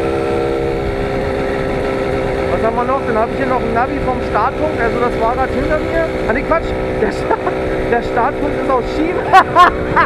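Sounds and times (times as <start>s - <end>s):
moped engine running: 0.0s - 10.0s.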